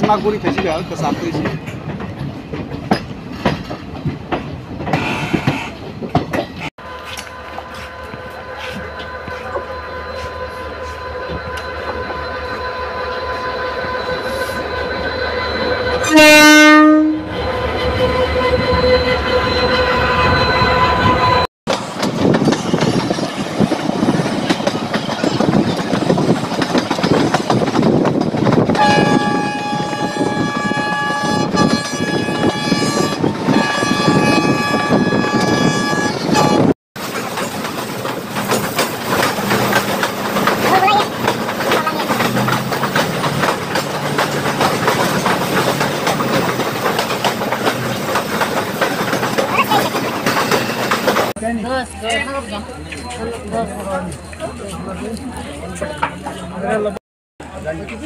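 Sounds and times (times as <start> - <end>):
diesel locomotive engine: 0.0 - 58.0
train rumble and clatter: 0.0 - 58.0
train horn: 6.8 - 21.4, 28.7 - 36.7.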